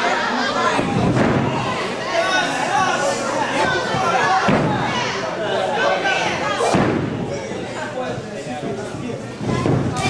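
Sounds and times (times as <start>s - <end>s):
thuds in a wrestling ring: 6.7s - 7.2s.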